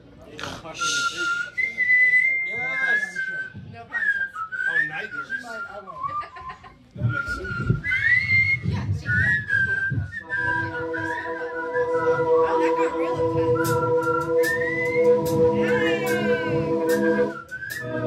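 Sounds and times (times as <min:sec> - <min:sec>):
band low end: 0:10.0 - 0:18.0
held chord: 0:10.4 - 0:18.0.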